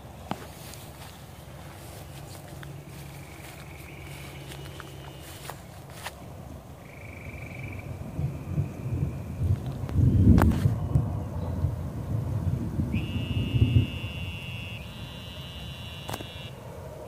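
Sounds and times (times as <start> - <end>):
animal high pulsing trills: 0.0 - 5.8, 6.8 - 9.5, 12.9 - 16.6
steady low rumble: 0.0 - 15.1
gusty rumble: 5.6 - 14.0.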